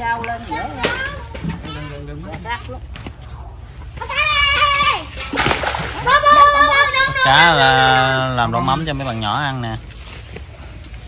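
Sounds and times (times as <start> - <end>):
net splashing through water: 5.0 - 7.3.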